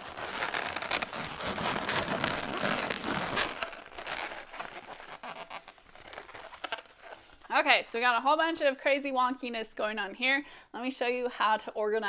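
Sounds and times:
balloons rubbing and crackling: 0.0 - 7.7.

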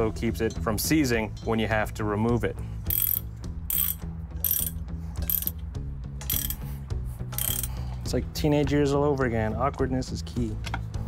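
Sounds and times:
socket ratchet clicking: 2.9 - 5.6, 6.2 - 6.7, 7.4 - 7.8.

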